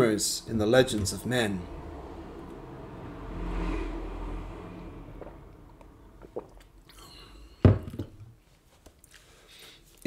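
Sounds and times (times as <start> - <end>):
person sipping from a mug: 6.2 - 7.6.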